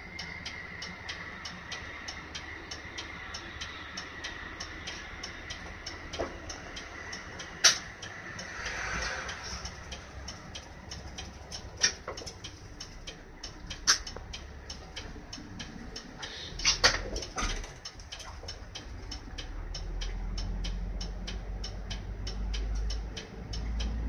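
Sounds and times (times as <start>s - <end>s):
diesel bus engine hum: 0.0s - 24.0s
steady ticking: 0.0s - 24.0s.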